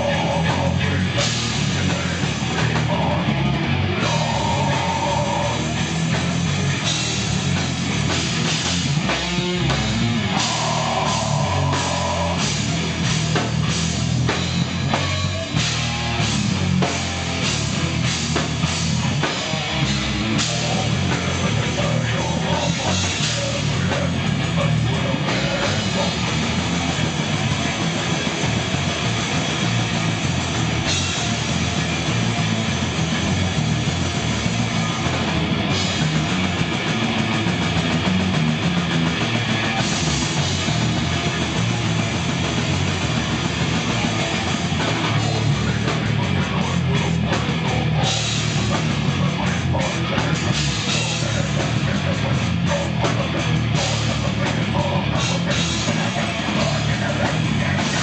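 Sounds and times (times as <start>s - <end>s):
death metal band playing live: 0.0s - 58.0s.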